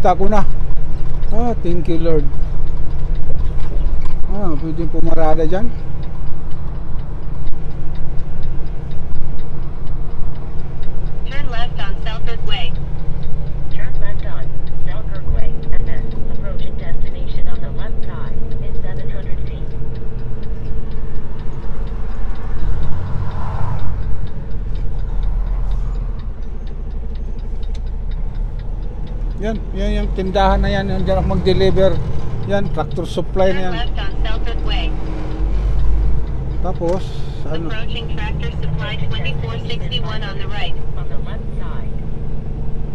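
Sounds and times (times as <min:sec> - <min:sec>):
diesel truck engine drone: 0:00.0 - 0:42.9.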